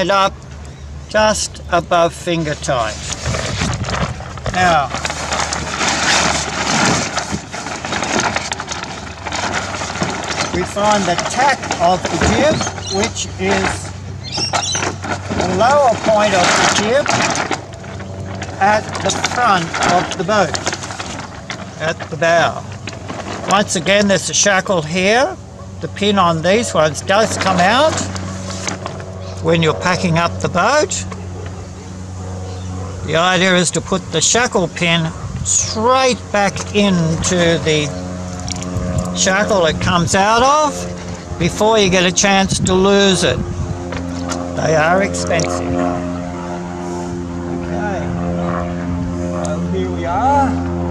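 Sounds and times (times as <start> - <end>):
low mechanical hum: 0.0 - 50.9
sailcloth crackling and rustling: 2.4 - 25.2, 26.5 - 31.6, 34.2 - 47.2.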